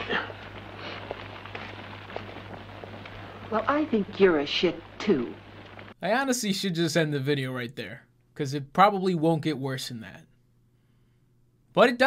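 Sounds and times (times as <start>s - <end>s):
campfire crackling: 0.0s - 6.0s
steady low hum: 0.0s - 11.7s.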